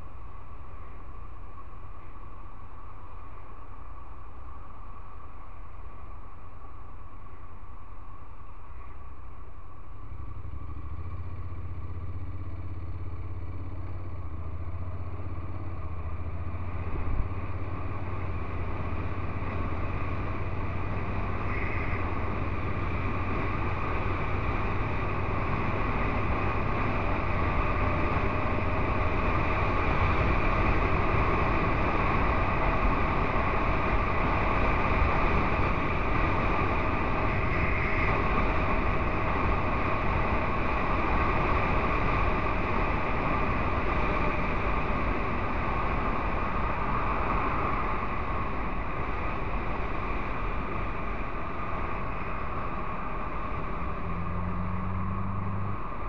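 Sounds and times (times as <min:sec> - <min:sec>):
rushing road noise: 0:00.0 - 0:56.0
motorcycle engine pulling away: 0:10.2 - 0:47.6, 0:53.6 - 0:56.0.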